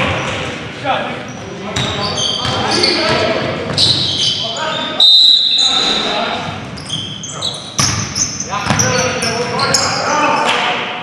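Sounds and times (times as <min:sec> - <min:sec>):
players' voices echoing: 0:00.0 - 0:11.0
sneakers squeaking on hardwood: 0:01.2 - 0:10.5
basketball bouncing: 0:01.8 - 0:03.9, 0:07.8 - 0:09.0.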